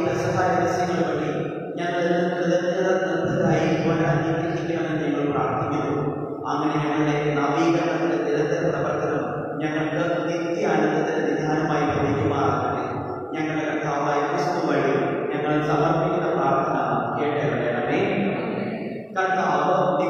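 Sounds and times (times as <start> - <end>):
priest chanting a prayer: 0.0 - 20.0.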